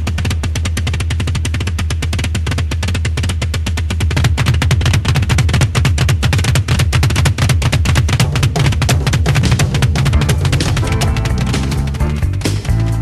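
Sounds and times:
music with fast drum beat: 0:00.0 - 0:13.0.

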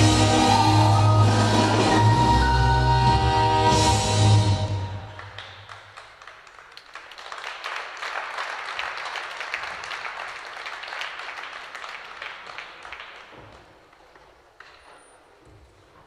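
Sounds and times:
audience applauding: 0:00.0 - 0:14.9.

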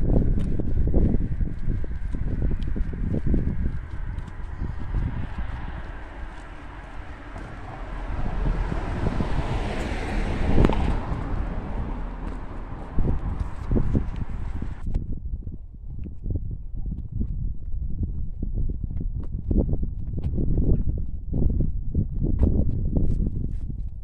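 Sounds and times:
footstep thumps: 0:00.0 - 0:14.8
wind on microphone: 0:00.0 - 0:24.0
car driving past: 0:01.9 - 0:14.8.

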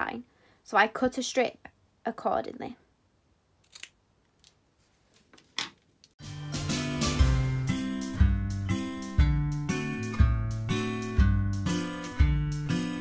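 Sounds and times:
music with steady beat: 0:06.2 - 0:13.0.

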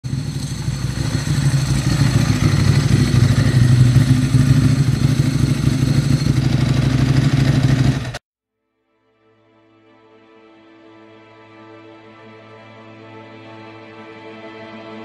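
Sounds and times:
motorcycle engine running: 0:00.0 - 0:08.2.

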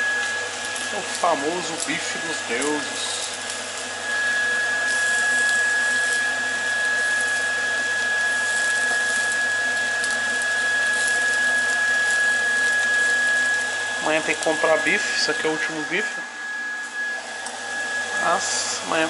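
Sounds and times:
steaks sizzling in a frying pan: 0:00.2 - 0:14.7
thin high whine: 0:14.0 - 0:19.0.

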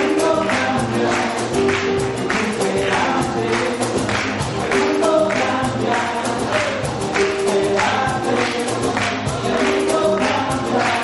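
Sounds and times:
audience clapping along: 0:00.0 - 0:11.0.

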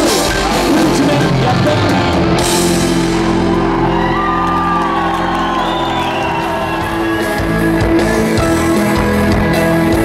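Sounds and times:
live rock band playing: 0:00.0 - 0:10.0
crowd whooping and shouting: 0:01.7 - 0:09.0.

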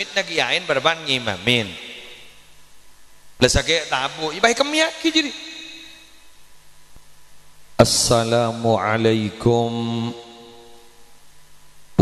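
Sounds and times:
man chanting through loudspeakers: 0:00.0 - 0:02.4, 0:07.8 - 0:10.9.

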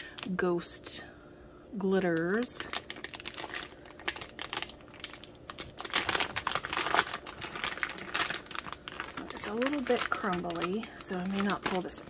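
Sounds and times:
plastic wrapping crinkling: 0:02.1 - 0:12.0.

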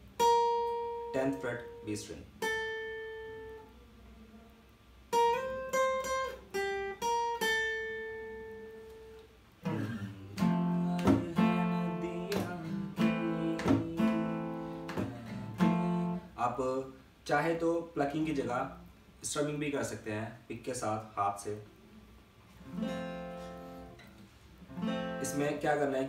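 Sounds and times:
acoustic guitar strummed chords: 0:00.0 - 0:03.7, 0:05.1 - 0:16.6, 0:22.6 - 0:26.0
acoustic guitar picked notes: 0:00.0 - 0:04.0, 0:05.0 - 0:16.6, 0:22.5 - 0:26.0.

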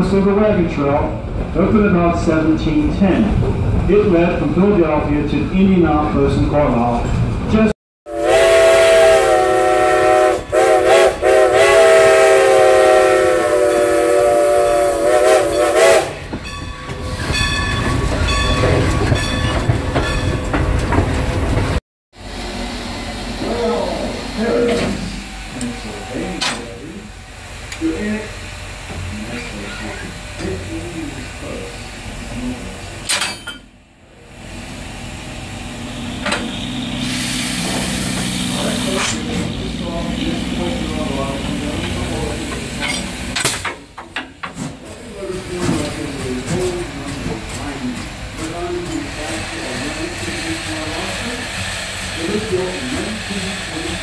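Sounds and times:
train rolling on track: 0:00.0 - 0:54.0
steam whistle blowing: 0:08.1 - 0:16.2.

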